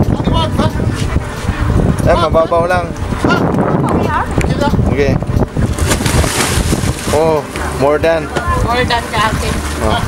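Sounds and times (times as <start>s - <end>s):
wind on microphone: 0.0s - 10.0s
water splash: 5.6s - 7.8s.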